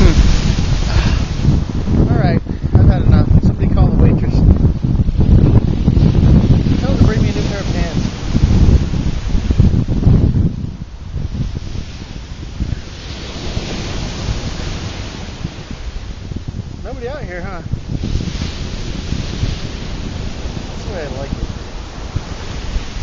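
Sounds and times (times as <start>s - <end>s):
ocean surf breaking on beach: 0.0s - 23.0s
wind buffeting microphone: 0.0s - 23.0s.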